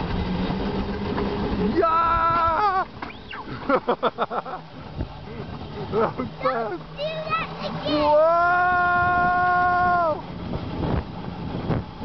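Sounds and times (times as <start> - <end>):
coaster sled rumbling on rails: 0.0 - 12.0
wind on microphone: 7.9 - 12.0.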